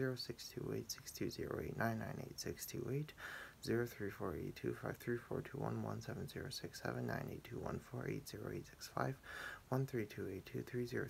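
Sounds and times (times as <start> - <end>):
young man reciting digits: 0.0 - 11.0.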